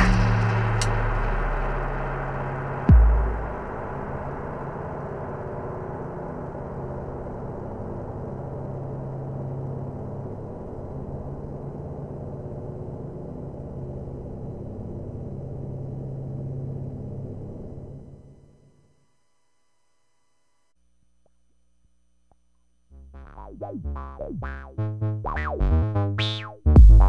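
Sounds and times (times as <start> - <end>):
synthesizer drone: 0.0 - 18.6, 22.9 - 27.0.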